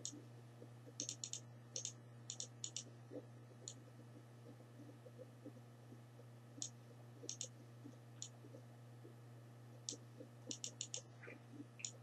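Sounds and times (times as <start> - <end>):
steady low hum: 0.0 - 12.0
faint sharp clicks: 9.8 - 11.1.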